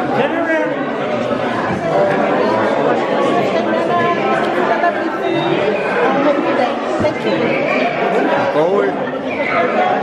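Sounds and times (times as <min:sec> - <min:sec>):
crowd chatter in a hall: 0:00.0 - 0:10.0.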